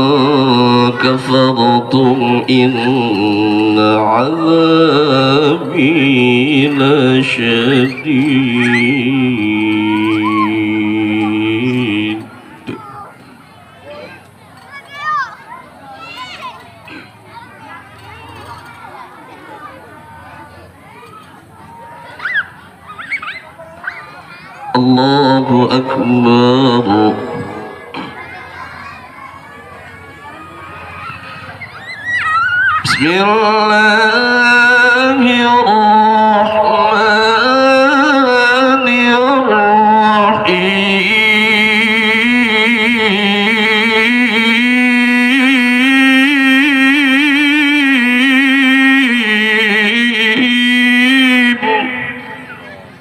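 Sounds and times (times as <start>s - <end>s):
man reciting melodically: 0.0s - 13.3s, 24.6s - 28.4s, 32.8s - 53.0s
children shrieking: 6.0s - 25.2s, 26.8s - 35.4s, 51.3s - 53.0s.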